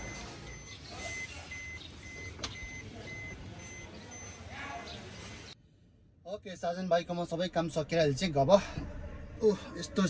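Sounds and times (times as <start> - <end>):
electronic warning beeper: 0.0 - 4.5.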